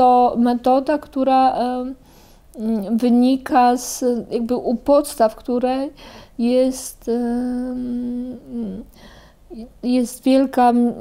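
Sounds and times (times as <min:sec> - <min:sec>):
woman speaking: 0:00.0 - 0:02.0, 0:02.6 - 0:08.9, 0:09.5 - 0:11.0
woman humming hesitantly: 0:07.1 - 0:09.7.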